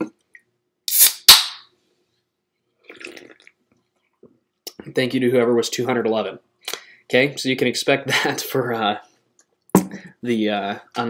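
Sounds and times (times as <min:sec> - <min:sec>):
person sipping: 0:02.8 - 0:03.6.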